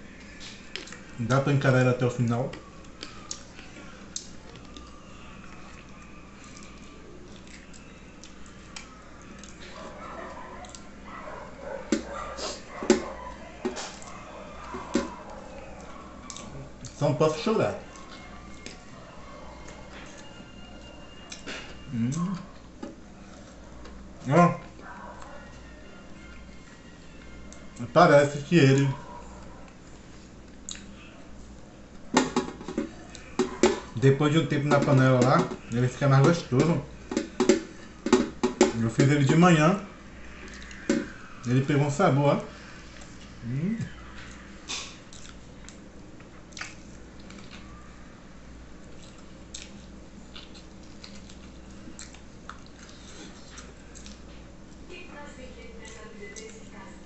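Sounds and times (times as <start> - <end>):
wet chewing and mouth clicks: 2.5 - 4.9, 5.5 - 11.0, 11.6 - 17.0, 29.4 - 31.0, 40.3 - 40.9, 44.1 - 47.8, 48.8 - 54.8.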